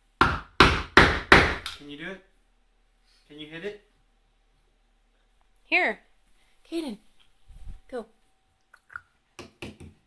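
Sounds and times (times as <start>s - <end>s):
hammer striking a door: 0.2s - 1.7s.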